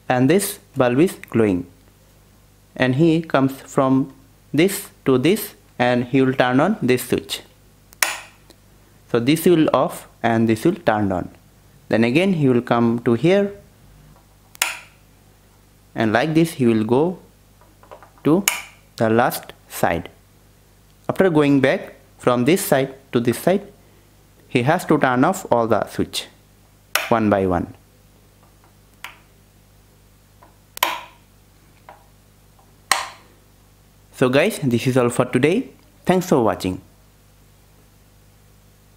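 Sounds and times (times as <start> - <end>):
light switch clicks: 7.9 - 8.4, 14.5 - 15.0, 18.4 - 18.8, 27.0 - 27.2, 28.9 - 29.3, 30.8 - 31.2, 32.9 - 33.2
plastic wall switch click: 30.8 - 31.2, 32.9 - 33.2.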